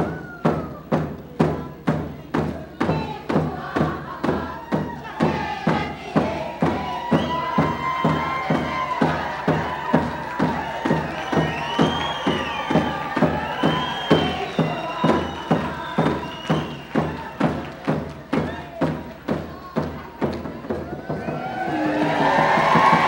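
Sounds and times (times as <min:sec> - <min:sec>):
group of voices singing: 0:00.0 - 0:20.3, 0:21.1 - 0:23.0
steady drum beat: 0:00.0 - 0:23.0
higher voices gliding: 0:21.2 - 0:23.0.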